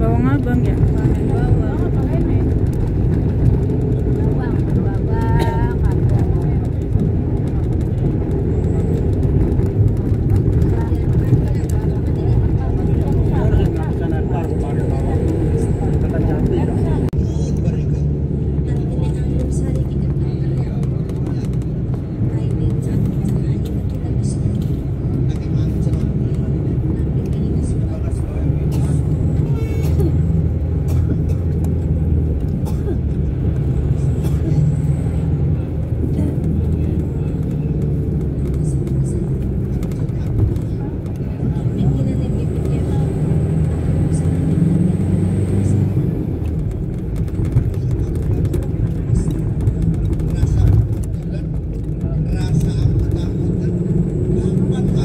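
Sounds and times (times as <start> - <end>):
low engine drone: 0.0 - 55.0
road noise: 0.0 - 55.0.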